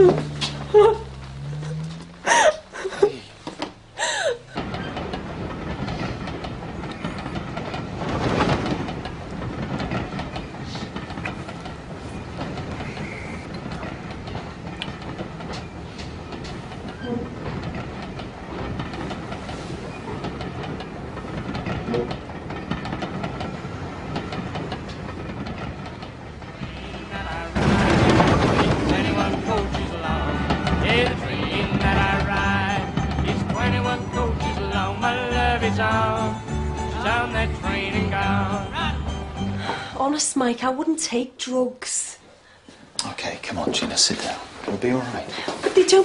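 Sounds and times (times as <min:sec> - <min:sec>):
train rolling clatter: 0:00.0 - 0:46.0.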